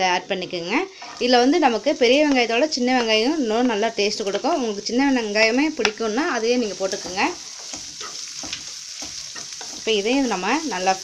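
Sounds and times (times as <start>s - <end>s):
onions sizzling in hot oil: 0.0s - 11.0s
spatula scraping pan: 0.3s - 4.8s, 5.8s - 11.0s.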